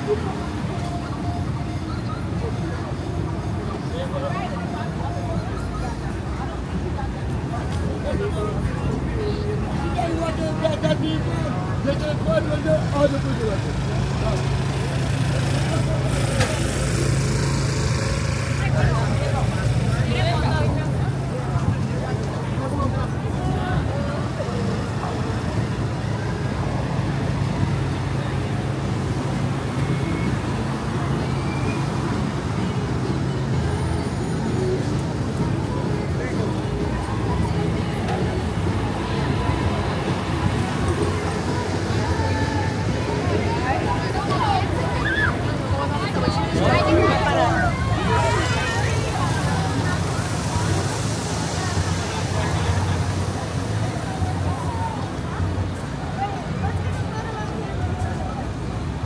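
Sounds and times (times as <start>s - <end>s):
faint voices of passers-by: 0.0s - 59.0s
traffic rumble: 0.0s - 59.0s.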